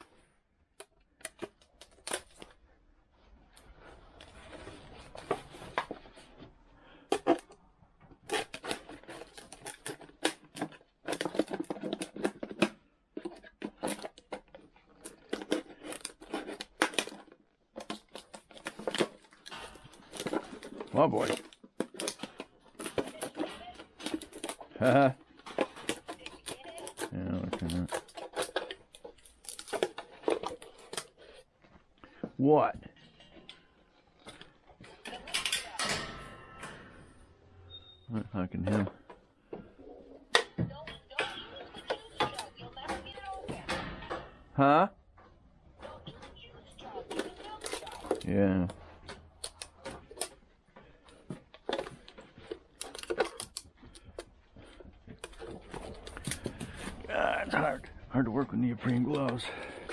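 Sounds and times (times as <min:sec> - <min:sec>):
nippers snipping plastic jug: 0:07.0 - 0:31.2
metal pen gate rattling: 0:35.3 - 0:37.2.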